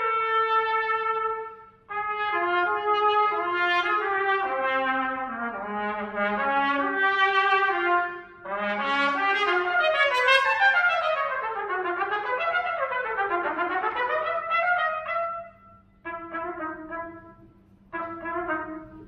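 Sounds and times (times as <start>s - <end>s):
solo trumpet playing: 0.0s - 19.0s.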